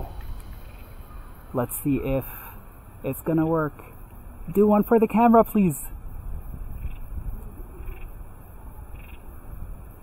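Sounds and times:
faint high-pitched sounds: 0.0 - 3.7
wind rumble: 0.0 - 10.0.

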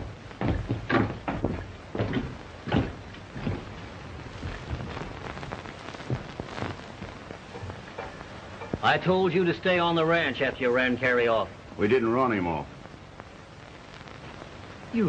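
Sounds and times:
footsteps on wooden floor: 0.0 - 6.8
old film soundtrack hiss: 0.0 - 15.0.

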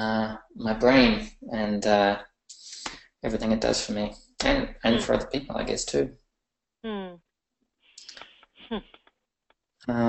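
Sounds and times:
breathy noise: 0.0 - 3.1
person murmuring: 0.0 - 6.1.

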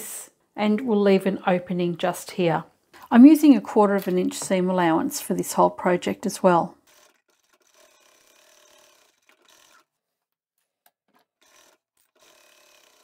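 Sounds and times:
fabric rubbing on sewing machine: 6.8 - 10.0.

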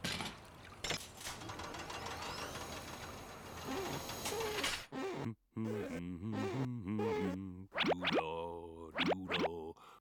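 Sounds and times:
rising squeaky cartoon glides: 1.7 - 8.2.

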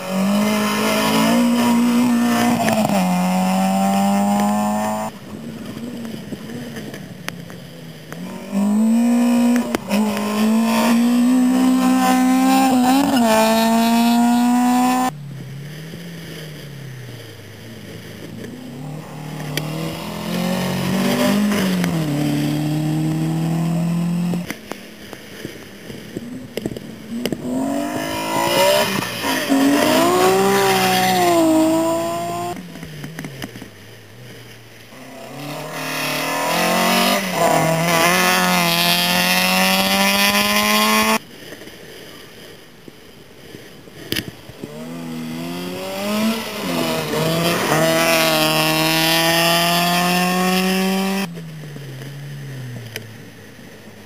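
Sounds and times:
rally car engines revving: 0.0 - 24.8, 25.8 - 41.2, 44.1 - 54.0.

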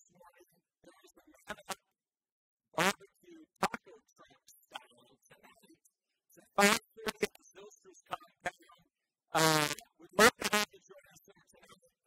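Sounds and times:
man's vocal sounds: 9.4 - 10.7.

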